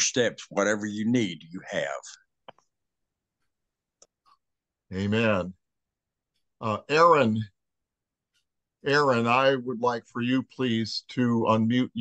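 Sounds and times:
man talking: 0.0 - 2.2, 4.9 - 5.6, 6.6 - 7.6, 8.8 - 12.0.

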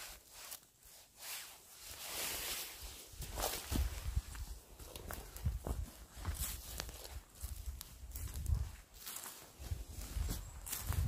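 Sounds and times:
twigs crackling underfoot: 0.0 - 11.0
footsteps on forest floor: 1.4 - 11.0.

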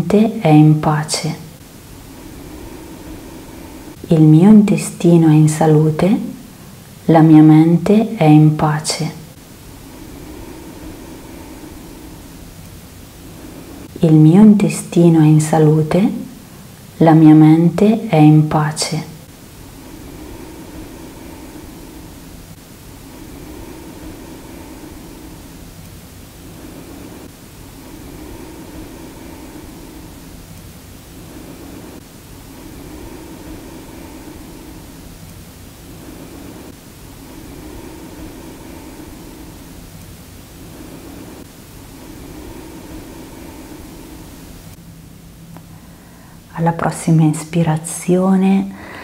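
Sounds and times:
steady hiss: 0.0 - 49.0.

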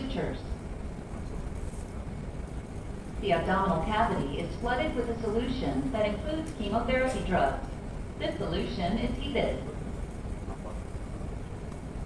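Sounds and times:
low rumble with faint hiss: 0.0 - 12.0.

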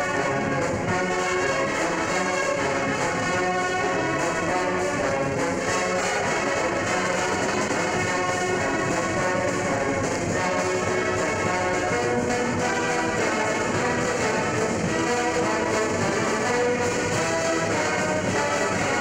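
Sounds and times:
big band playing: 0.0 - 19.0
trombones and trumpets: 0.0 - 19.0.

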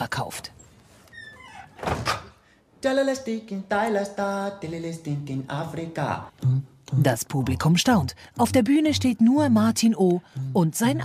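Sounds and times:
door squeaking: 0.5 - 2.4
door shutting with thud: 1.3 - 2.4.

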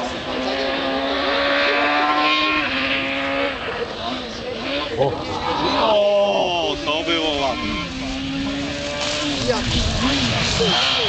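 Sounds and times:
rally car engine at high revs: 0.0 - 11.0.

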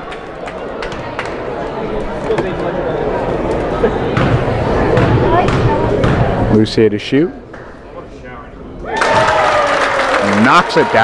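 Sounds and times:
crowd chattering and calling out: 0.0 - 9.0.

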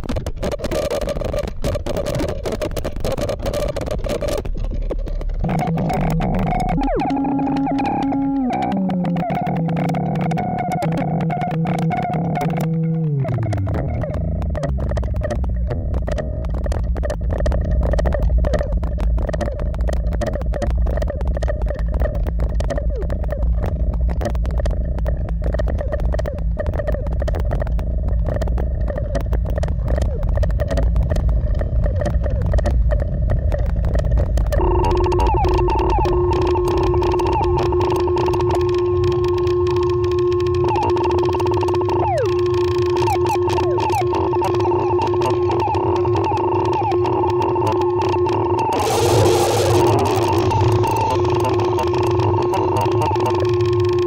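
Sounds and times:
electronic drone with buzzing rumble: 0.0 - 54.0
fast flickering clicks: 0.0 - 54.0
steady higher synth tone: 5.4 - 13.2, 34.6 - 54.0
burst of noise: 33.8 - 54.0.

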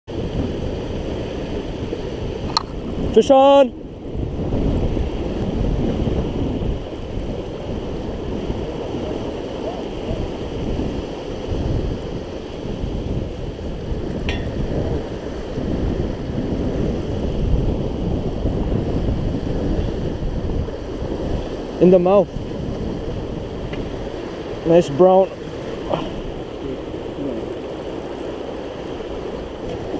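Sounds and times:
churning water: 0.1 - 29.9
wind buffeting microphone: 0.1 - 29.9.

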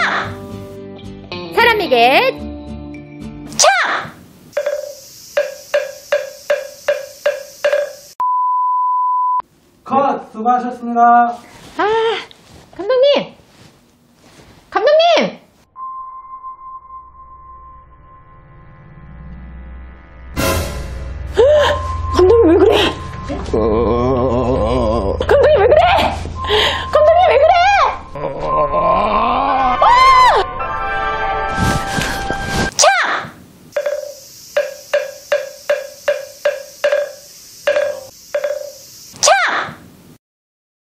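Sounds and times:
background music: 0.0 - 3.6, 20.3 - 23.8, 29.7 - 32.7
hollow wood-block knocks: 4.6 - 8.2, 33.8 - 38.8.

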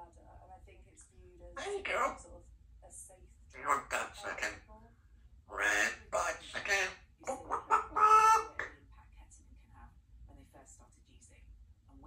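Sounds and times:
parrot chattering: 1.6 - 2.2, 3.5 - 4.7, 5.5 - 8.8.

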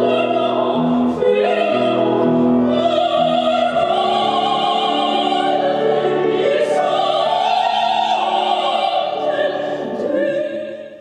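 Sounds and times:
women singing operatic duet: 0.0 - 11.0.

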